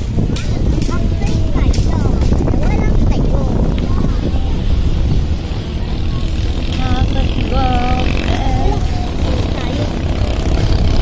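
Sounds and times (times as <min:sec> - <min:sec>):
moving vehicle rumble: 0:00.0 - 0:11.0
wind buffeting microphone: 0:00.0 - 0:11.0.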